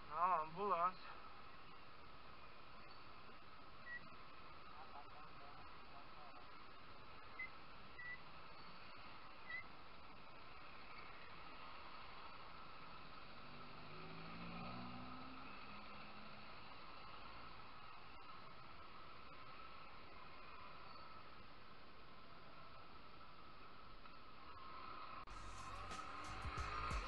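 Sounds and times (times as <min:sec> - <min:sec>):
muffled motorcycle riding noise: 0:01.5 - 0:27.0.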